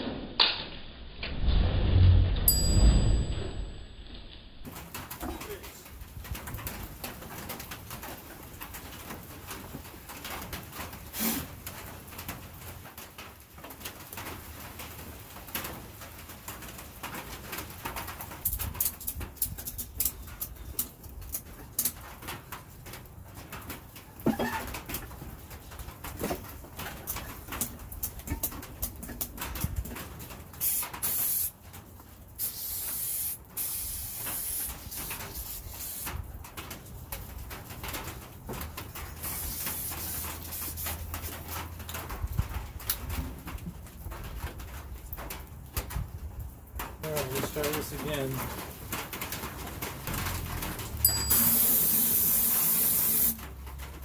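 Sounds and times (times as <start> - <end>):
aerosol spray hissing: 30.6 - 31.5, 32.4 - 36.1, 51.4 - 53.4.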